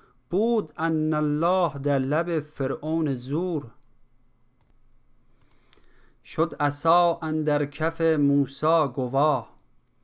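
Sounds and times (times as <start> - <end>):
faint computer mouse clicks: 4.6 - 5.9.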